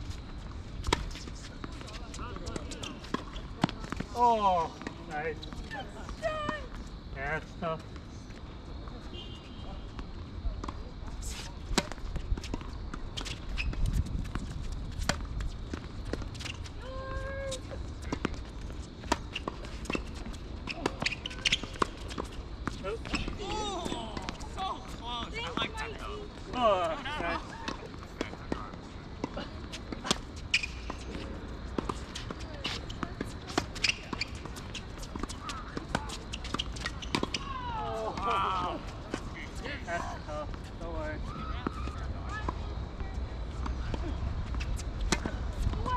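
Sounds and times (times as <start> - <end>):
tennis balls bouncing on court: 0.2 - 6.8, 10.0 - 45.9.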